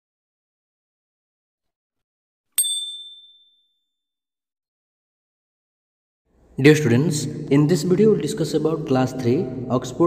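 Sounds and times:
bright notification bell ding: 2.6 - 3.6.

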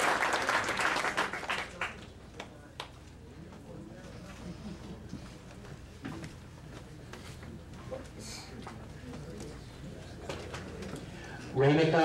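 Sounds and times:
room murmur: 0.0 - 12.0.

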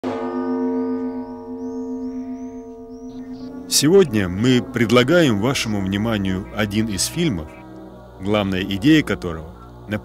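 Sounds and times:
bell-like chime: 0.0 - 5.1.

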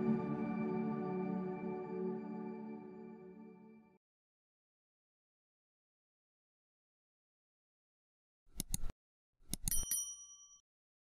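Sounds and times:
quick mouse clicks: 8.5 - 8.9
bright bell ding: 9.7 - 10.6.

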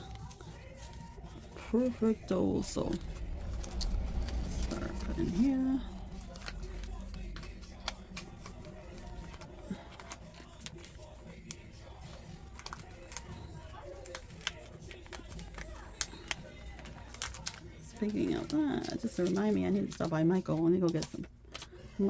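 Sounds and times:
paper money and plastic rustling: 0.0 - 22.0.

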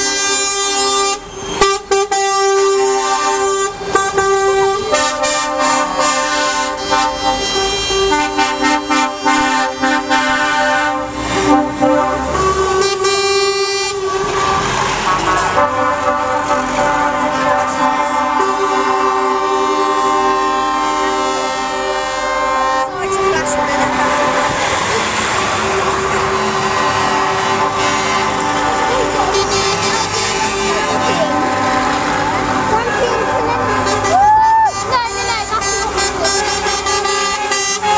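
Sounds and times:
truck air horns: 0.0 - 37.9
truck engines: 0.0 - 37.9.

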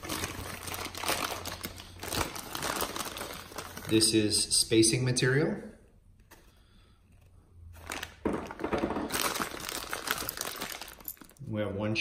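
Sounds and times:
plastic bag crinkling: 0.0 - 4.2, 7.8 - 11.4.

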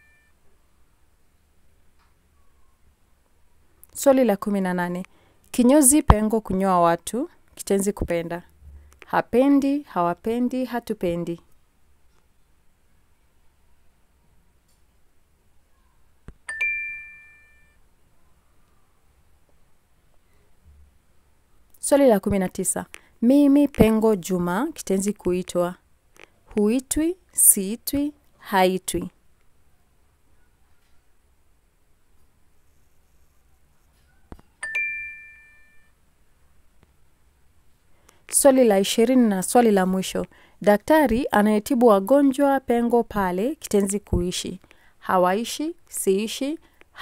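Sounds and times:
bright two-tone ding: 16.5 - 17.8, 34.6 - 35.9.

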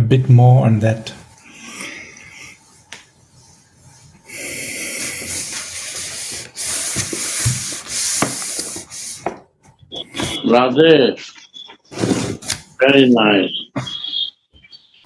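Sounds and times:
loud hiss: 4.3 - 9.3.

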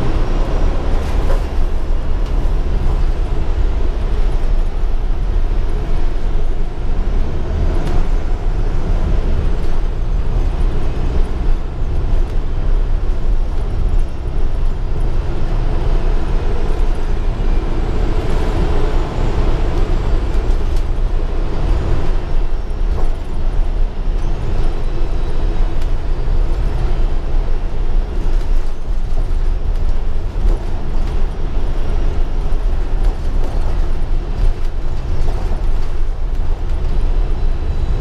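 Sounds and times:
bus interior rumble: 0.0 - 38.0.

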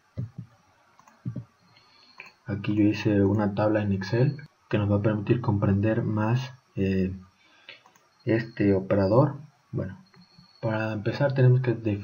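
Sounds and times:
computer mouse clicks: 0.2 - 2.4, 7.7 - 8.2.

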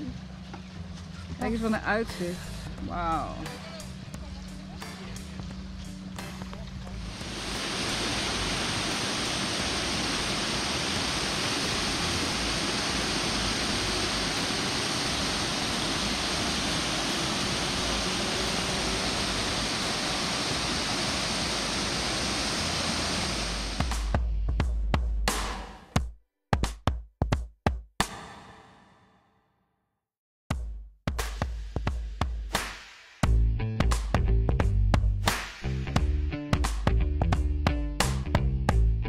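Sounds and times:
waterfall rushing over rock: 7.0 - 24.0.

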